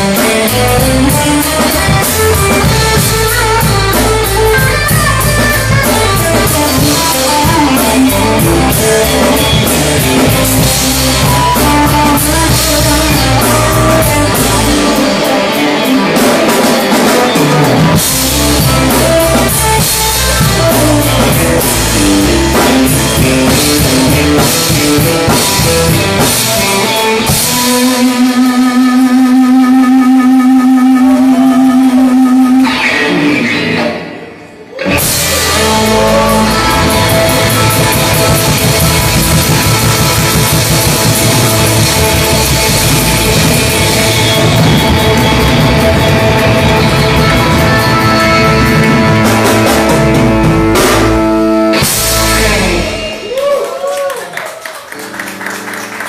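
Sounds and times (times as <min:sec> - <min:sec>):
electric guitar sustained notes: 0:00.0 - 0:53.9
blues band playing: 0:00.0 - 0:56.0
sustained electric guitar note: 0:26.9 - 0:53.3.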